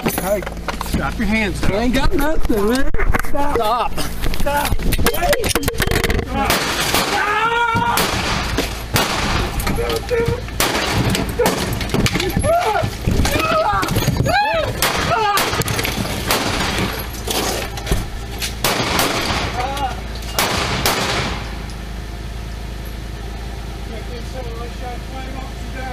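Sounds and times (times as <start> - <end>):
steady low hum: 0.0 - 25.9
sharp bangs and knocks: 5.6 - 21.8
wordless shouts and cries: 6.3 - 8.6, 11.2 - 15.9.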